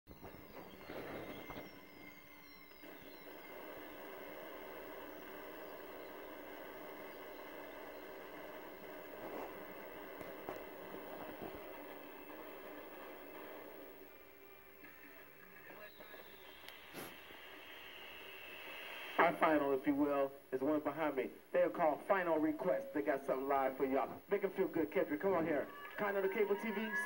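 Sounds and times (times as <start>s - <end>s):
fireworks pops: 0.1s - 14.0s
fireworks falling whistles: 0.1s - 19.3s, 25.4s - 27.0s
television hum and hiss: 0.1s - 27.0s.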